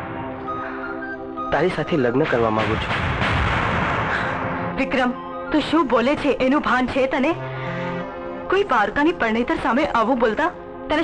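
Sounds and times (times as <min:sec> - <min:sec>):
dramatic boom sound effect: 0:02.2 - 0:04.8.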